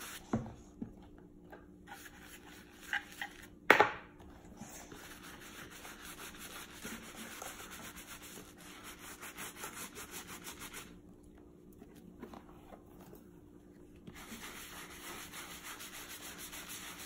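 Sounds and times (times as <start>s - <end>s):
brush scrubbing leather boot: 4.9s - 10.9s, 14.1s - 17.0s.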